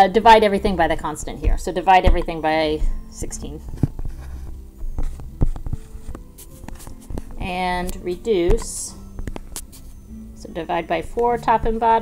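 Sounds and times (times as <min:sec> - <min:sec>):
stylus tapping on touchscreen: 0:03.8 - 0:09.9.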